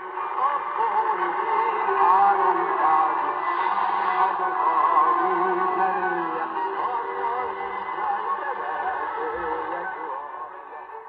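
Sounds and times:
am radio music through loudspeaker: 0.0 - 11.0.

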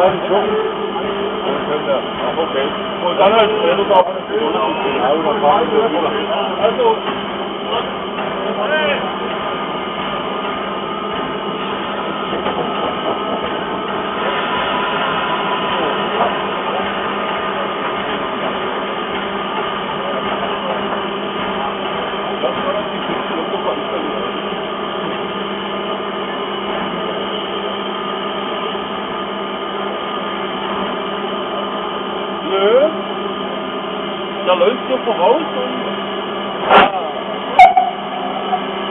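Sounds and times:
steam hissing: 12.8 - 18.8.

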